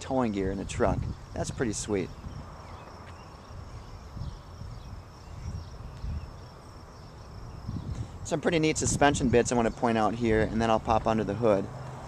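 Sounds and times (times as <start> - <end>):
high-pitched insect trill: 0.7 - 8.4.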